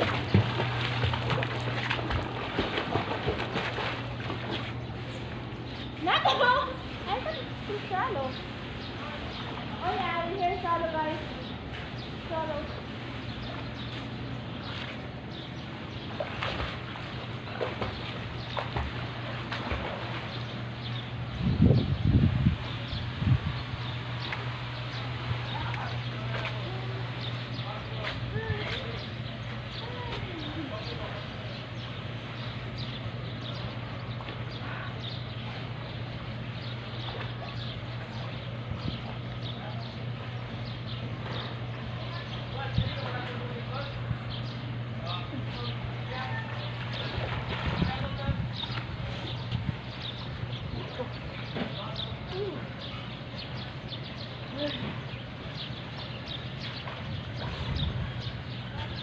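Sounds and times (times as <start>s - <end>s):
water splashing from swimmer: 0.0s - 4.8s, 16.0s - 20.6s, 46.5s - 49.4s
swimmer splashing: 0.0s - 21.4s, 22.3s - 59.0s
steady low hum: 0.0s - 59.0s
wind gusts on microphone: 21.2s - 23.9s, 47.0s - 50.8s, 57.0s - 59.0s.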